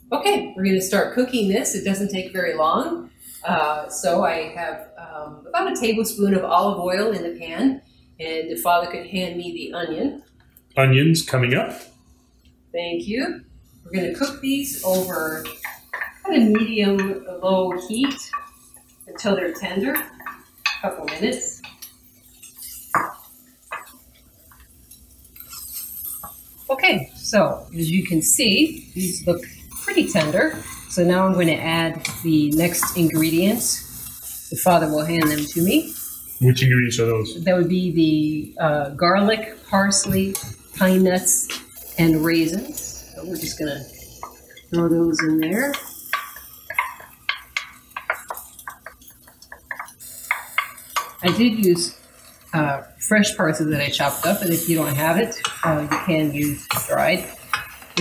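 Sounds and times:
onions hissing in a pan: 0.0 - 10.2, 11.7 - 58.0.

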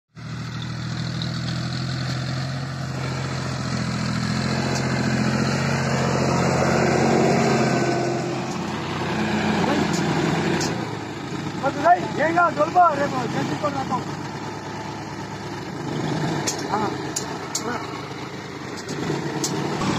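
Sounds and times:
tractor diesel engine under load: 0.1 - 19.9
dozer blade pushing soil: 0.4 - 19.9.

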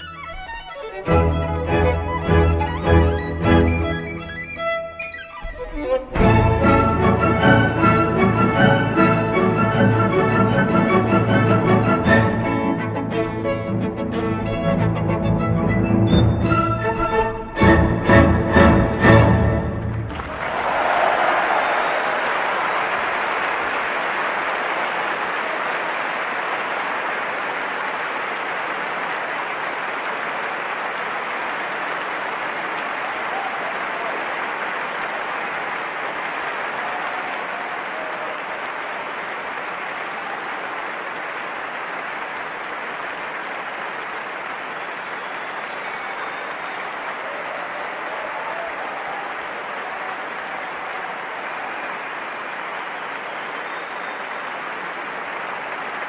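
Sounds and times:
large audience applauding: 0.0 - 56.0.

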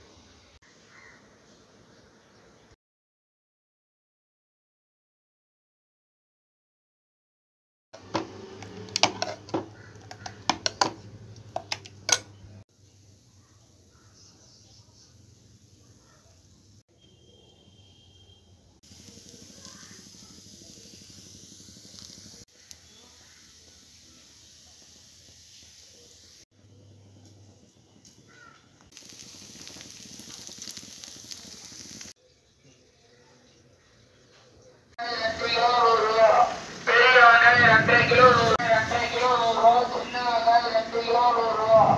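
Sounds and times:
kitchen handling: 8.0 - 12.4
flatbread hissing on griddle: 18.8 - 26.5, 28.9 - 32.2.

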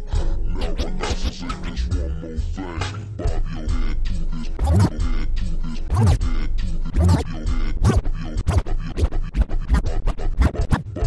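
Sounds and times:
slowed-down hip hop beat: 0.0 - 11.0
turntable scratching: 0.6 - 2.0, 4.5 - 5.1, 5.8 - 11.0.

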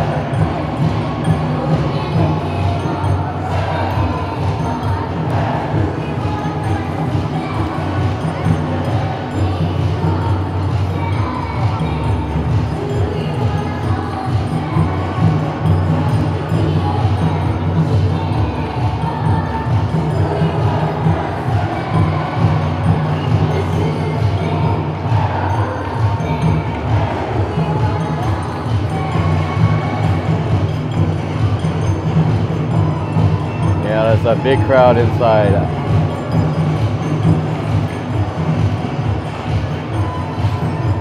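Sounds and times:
chatter of a large crowd: 0.0 - 41.0
festival music playing: 0.0 - 41.0.

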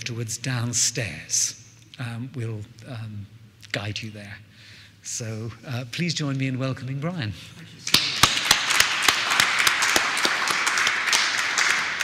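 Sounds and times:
audience applauding: 7.9 - 12.0.

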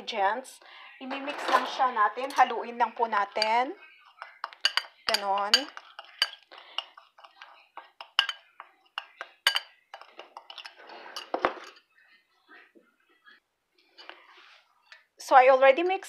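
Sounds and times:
metal spoon clinking in ceramic bowl: 2.2 - 11.8.

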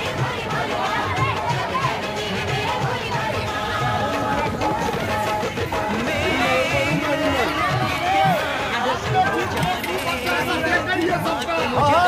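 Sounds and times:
overlapping crowd chatter: 0.0 - 12.0.

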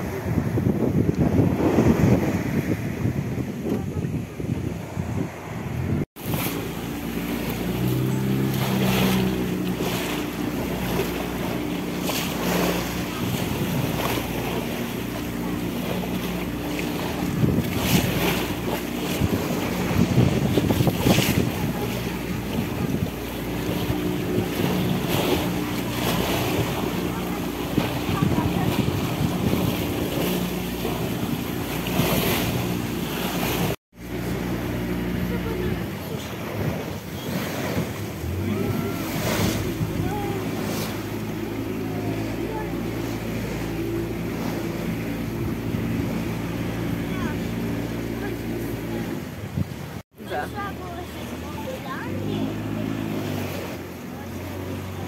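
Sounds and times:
wind on microphone: 0.0 - 53.8
motorboat engine running: 0.0 - 55.0
water splashing along hull: 0.0 - 55.0.

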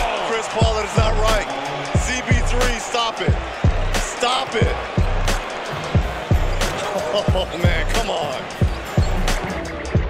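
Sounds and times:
music with deep bass kicks: 4.6 - 8.1.

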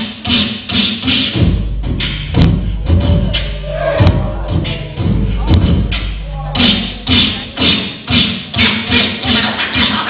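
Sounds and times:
beatboxed low bass hum: 0.0 - 10.0
beatboxing kick thumps: 0.0 - 10.0.

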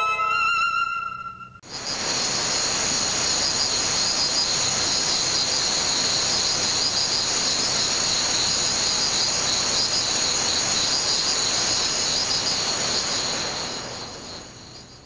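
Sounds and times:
high pulsing chirps: 0.0 - 1.6
steady hiss: 1.6 - 15.0.

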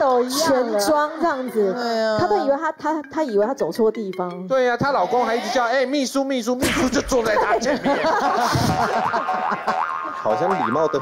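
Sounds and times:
studio laughter: 7.1 - 10.9.

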